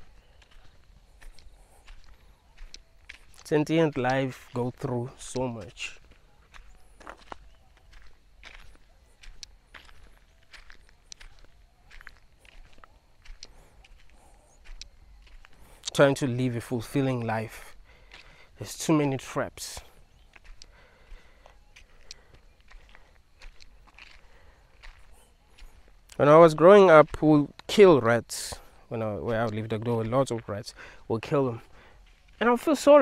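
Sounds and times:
footsteps on dirt: 0.0 - 33.0.

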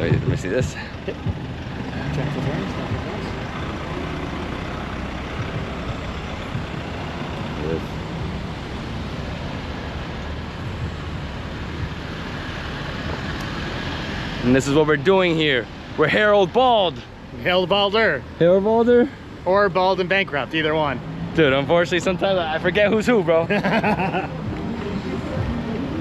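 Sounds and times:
vehicles driving past: 0.0 - 26.0.

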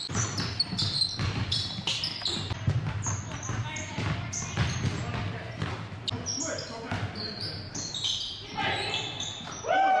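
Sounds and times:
basketball bouncing on court: 0.0 - 9.6
voices echoing in a hall: 3.1 - 10.0.

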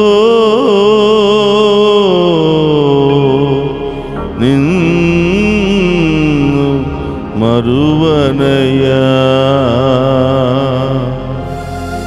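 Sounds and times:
man singing a hymn: 0.0 - 11.6.

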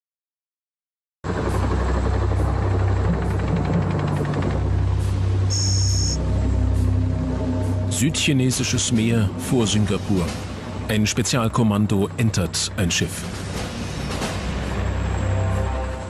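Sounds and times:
background music: 1.3 - 16.0
helicopter rotor beating: 1.3 - 16.0
short high tone: 5.5 - 6.2.

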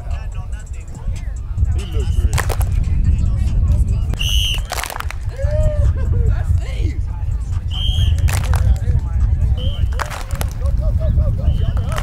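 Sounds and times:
constant low rumble: 0.0 - 12.0
shrill whistle blasts: 4.2 - 4.8, 7.7 - 8.3, 9.6 - 10.1, 11.4 - 12.0.

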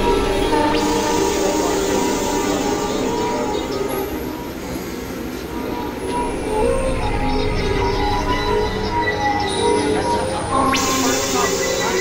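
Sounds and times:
synthesizer drone tones: 0.0 - 12.0.

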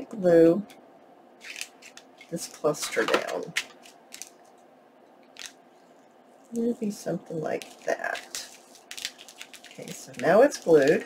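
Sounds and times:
paper and lace netting rustling: 7.5 - 11.0.

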